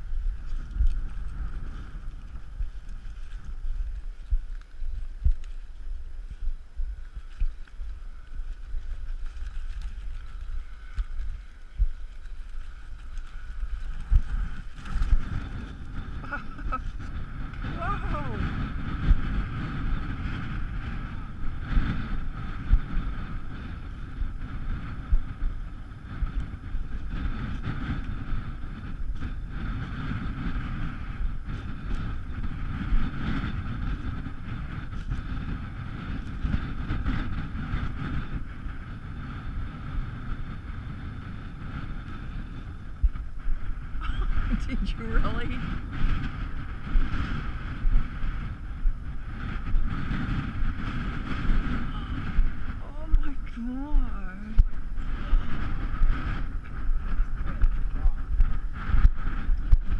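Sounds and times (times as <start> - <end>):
wind buffeting microphone: 0.0 - 59.9.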